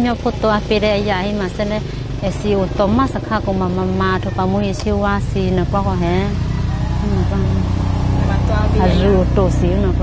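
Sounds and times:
woman speaking: 0.0 - 6.4, 7.0 - 7.7, 8.7 - 10.0.

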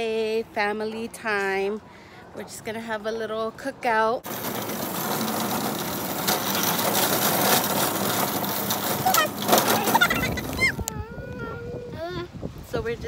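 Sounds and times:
plastic wheels rattling on asphalt: 4.2 - 10.9
voices: 8.8 - 13.0.

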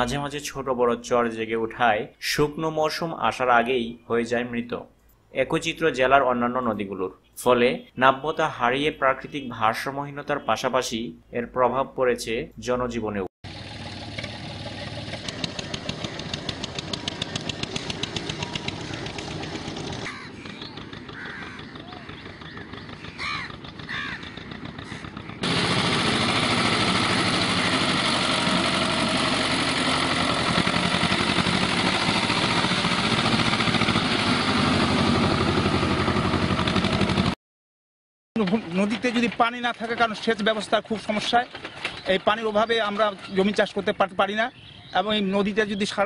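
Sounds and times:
distant tractor engine running: 13.5 - 37.4, 38.4 - 43.9
nearby tractor engine running loudly: 13.5 - 37.4
bird calls: 15.1 - 25.4, 40.8 - 46.0.

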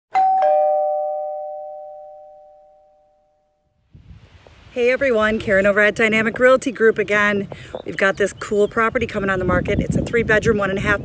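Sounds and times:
two-note doorbell chime: 0.1 - 3.6.

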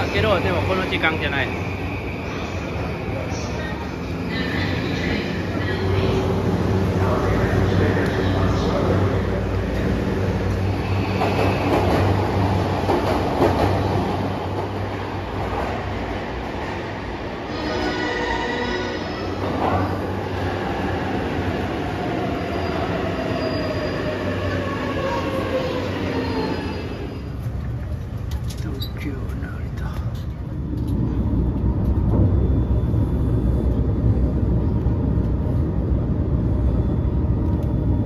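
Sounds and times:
train wheels rumbling on rails: 0.0 - 17.6
high squeal: 22.4 - 27.4.

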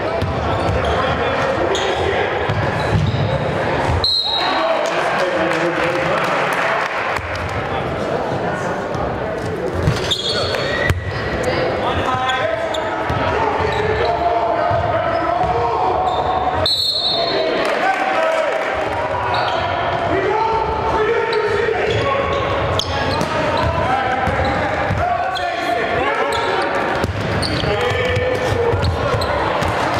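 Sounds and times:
indistinct echoing voices: 0.0 - 29.9.

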